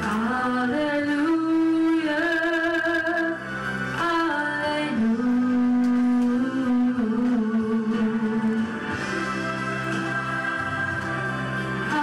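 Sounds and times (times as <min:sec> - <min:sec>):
woman singing slow song: 0:00.0 - 0:03.4, 0:04.0 - 0:08.9, 0:10.2 - 0:12.0.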